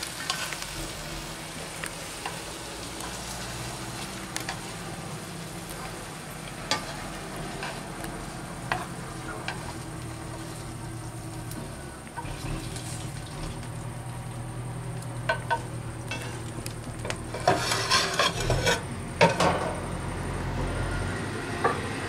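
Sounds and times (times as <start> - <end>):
frying pan sizzling: 0.0 - 20.9
steady low hum: 0.0 - 22.0.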